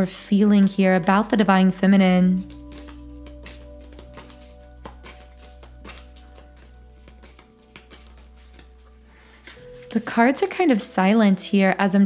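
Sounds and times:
soft music of held tones: 0.0 - 12.0.

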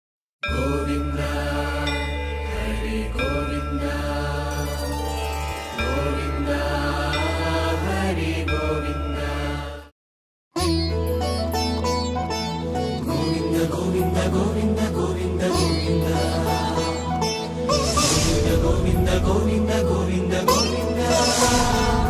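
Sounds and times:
chanted mantra: 0.5 - 4.8
steady low drone: 17.7 - 20.3.

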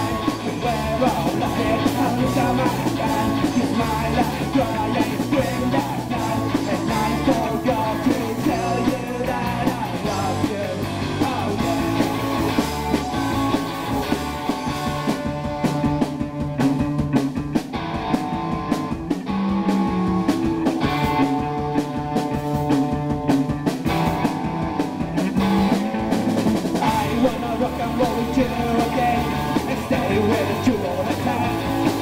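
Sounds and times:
bass guitar: 0.0 - 32.0
drum kit beat: 0.0 - 32.0
electric guitar: 0.0 - 32.0.

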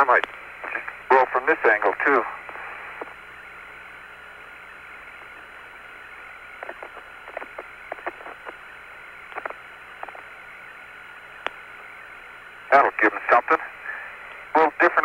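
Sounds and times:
faint steady whine: 0.0 - 15.0
radio hiss: 0.0 - 15.0.

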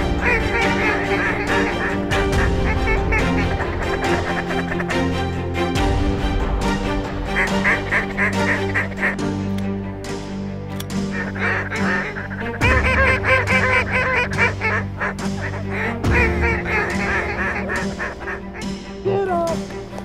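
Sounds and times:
geese honking: 0.0 - 5.8, 7.1 - 9.2, 10.8 - 18.9
sustained low music notes: 0.0 - 20.0.

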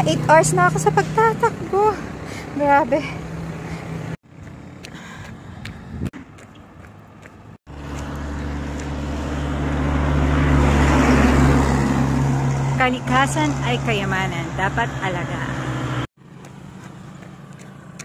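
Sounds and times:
road noise: 0.0 - 18.0
vehicle engine hum: 0.0 - 18.0.

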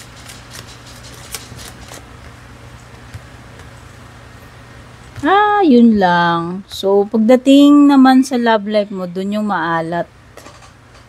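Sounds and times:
cards being shuffled: 0.0 - 3.8
steady low hum: 0.0 - 11.0.

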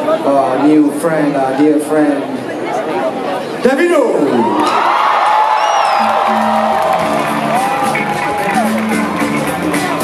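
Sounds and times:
crowd cheering and whooping: 4.4 - 10.0
afrobeat band playing live: 5.8 - 10.0.

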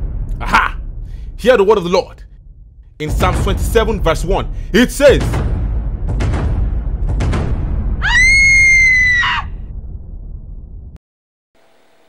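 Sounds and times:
deep dramatic music: 0.0 - 11.0
shrill scream: 8.0 - 9.6.

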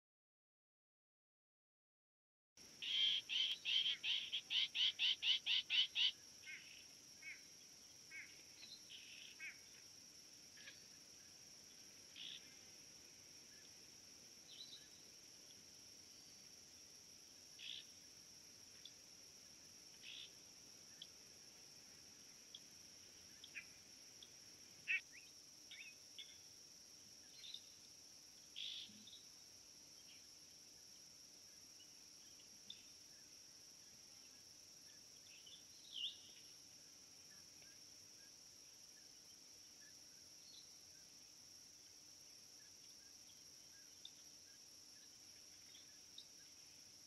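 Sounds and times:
insects droning: 2.6 - 47.0
bird chirps and calls: 2.8 - 7.4.

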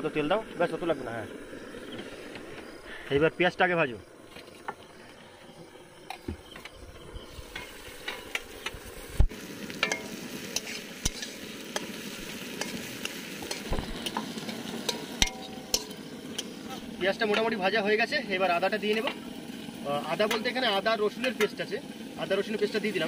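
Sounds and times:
onions sizzling in hot oil: 0.0 - 23.0
metal spatula scraping pan: 9.8 - 17.5.

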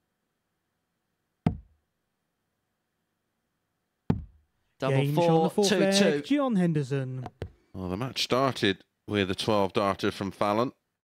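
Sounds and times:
darts striking dartboard: 1.5 - 1.8, 4.1 - 4.4.

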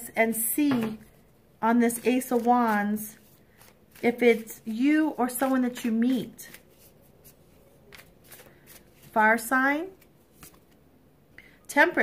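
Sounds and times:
cards being shuffled: 1.8 - 10.8.

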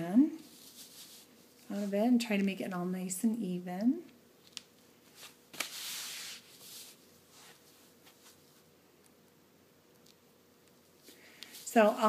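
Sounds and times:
fabric rustling: 0.4 - 2.2, 5.0 - 8.7, 10.9 - 12.0.

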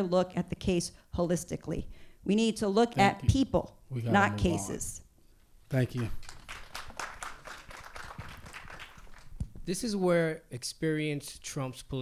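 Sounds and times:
audience applauding: 5.9 - 9.4.

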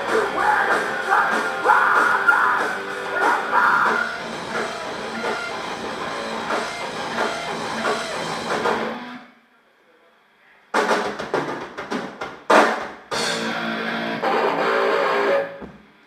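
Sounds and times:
bass guitar: 0.0 - 9.2, 13.1 - 16.0
drum kit: 0.0 - 9.2, 10.7 - 16.0
distorted electric guitars: 0.0 - 9.3, 13.1 - 16.0.

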